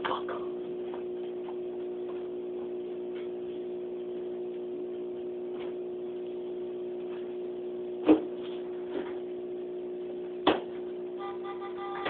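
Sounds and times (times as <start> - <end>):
aquarium motor hum: 0.0 - 12.0.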